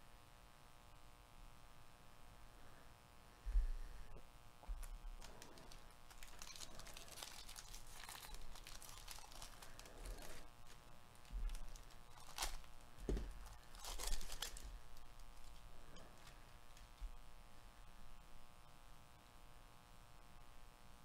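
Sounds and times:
foil pack tearing and crinkling: 4.8s - 15.6s.

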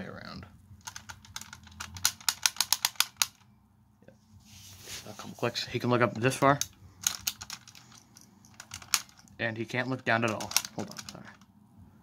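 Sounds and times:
toy neck joint clicking: 0.8s - 3.5s, 6.3s - 9.4s, 10.2s - 11.5s.

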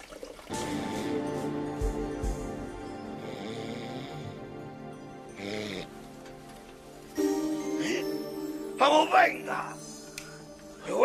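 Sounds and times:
soft background music: 0.5s - 11.0s
man snoring: 2.9s - 6.1s.

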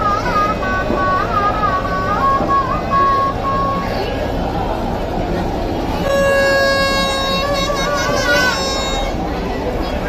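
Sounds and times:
street crowd din: 0.0s - 10.0s
shrill high melody: 6.0s - 9.2s.

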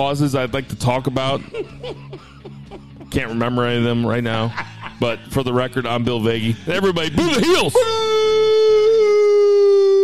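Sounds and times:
person booing: 7.8s - 10.0s.

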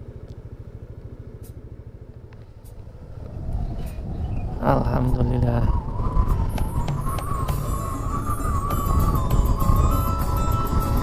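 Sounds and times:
motorcycle engine running: 0.0s - 5.1s, 5.7s - 11.0s.

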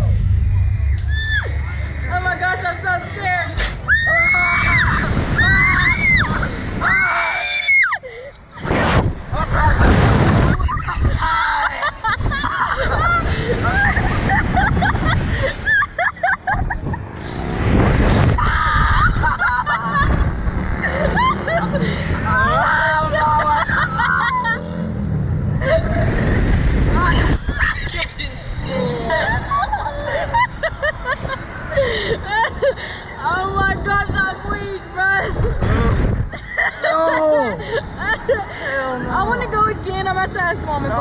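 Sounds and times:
wind buffeting microphone: 0.0s - 7.1s, 8.6s - 24.0s, 25.6s - 36.8s
loud rush of noise: 0.0s - 36.8s
riders screaming: 0.8s - 2.5s, 3.8s - 8.0s, 18.3s - 24.9s.

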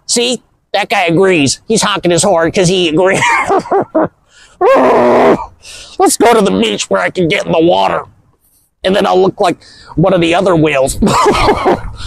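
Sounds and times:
man groaning: 4.6s - 5.5s.

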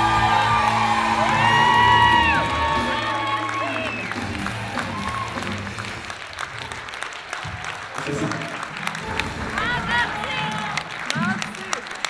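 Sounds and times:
people shouting: 0.0s - 5.6s
audience applauding: 0.0s - 12.0s.

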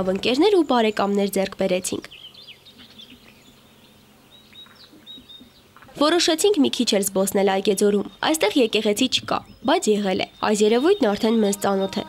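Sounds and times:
small bird chirping: 0.3s - 12.0s
whistled bird notes: 7.7s - 12.0s.

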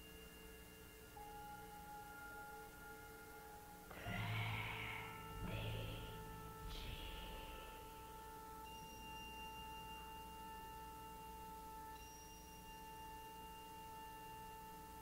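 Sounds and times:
faint steady held tone: 0.0s - 15.0s.

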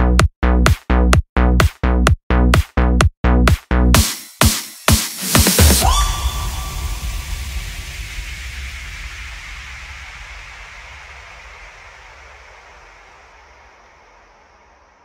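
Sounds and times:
hissing noise wash: 5.8s - 15.0s.

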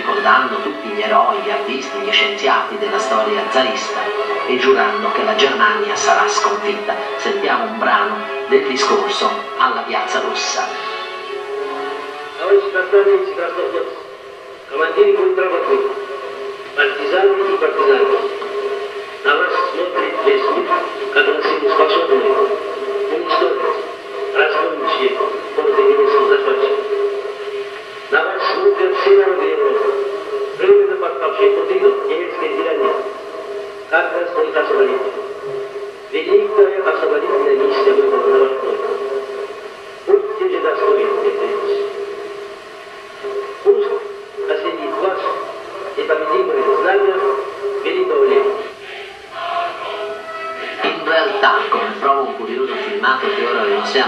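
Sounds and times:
man speaking: 0.0s - 10.8s, 12.4s - 14.0s, 14.7s - 16.0s, 16.8s - 18.3s, 19.2s - 26.9s, 28.1s - 30.0s, 30.6s - 33.2s, 33.9s - 35.2s, 36.1s - 39.1s, 40.1s - 41.9s, 43.6s - 48.8s, 50.7s - 54.0s
steady tone: 0.0s - 54.0s.

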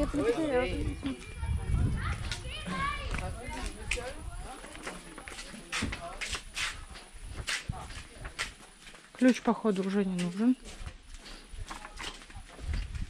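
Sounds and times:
children's voices: 0.0s - 4.5s.

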